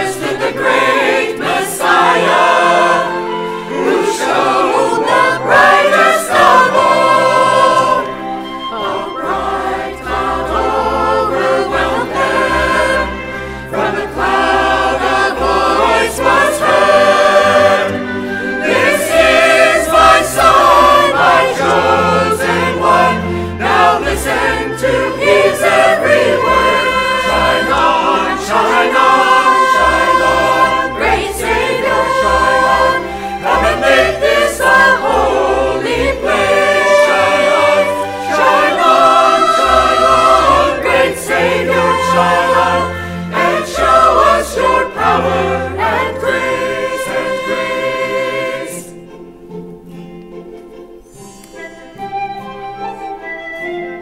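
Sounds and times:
choir singing: 0.0 - 54.0.

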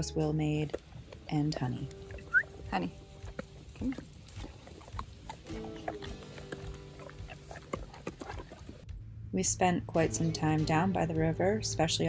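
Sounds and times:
background music held notes: 0.0 - 12.0
dog eating wet mouth noises: 1.9 - 8.8
dog crunching treat: 3.2 - 8.8.

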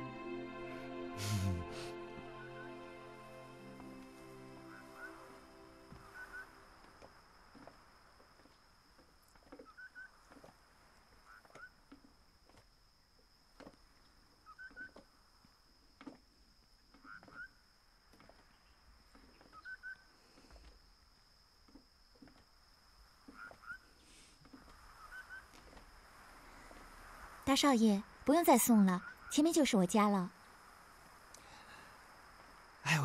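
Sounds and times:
soft background music: 0.0 - 7.0
faint bird chirps: 4.6 - 6.8, 9.6 - 10.3, 14.3 - 15.0, 17.0 - 17.6, 18.3 - 21.2, 23.2 - 25.6, 28.4 - 30.6.

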